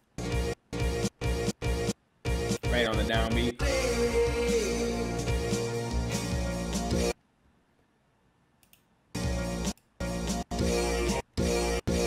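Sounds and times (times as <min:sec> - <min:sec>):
faint computer clicks: 0:08.6 - 0:08.9.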